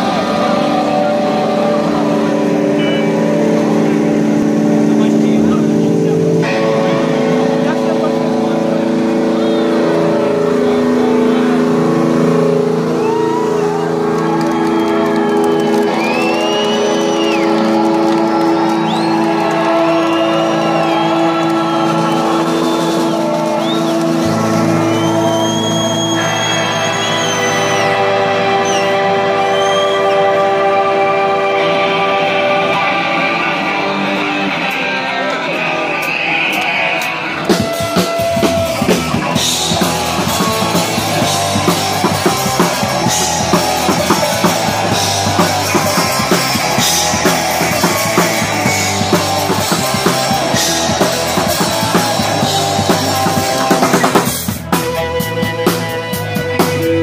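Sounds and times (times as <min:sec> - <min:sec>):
band playing droning chords: 0:00.0 - 0:57.0.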